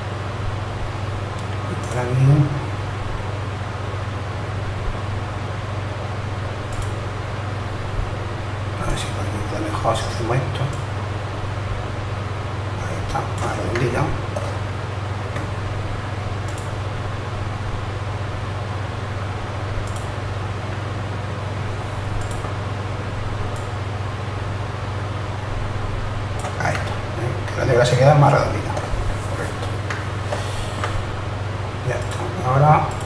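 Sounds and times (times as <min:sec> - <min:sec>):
steady low hum: 0:00.0 - 0:33.0
faint clicks: 0:06.7 - 0:07.0, 0:16.4 - 0:16.7, 0:19.8 - 0:20.1, 0:22.2 - 0:22.5.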